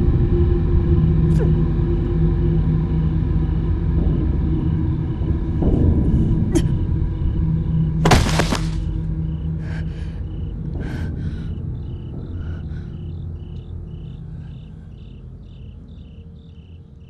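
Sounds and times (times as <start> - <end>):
low rumbling drone: 0.0 - 17.0
crickets chirping: 0.2 - 17.0.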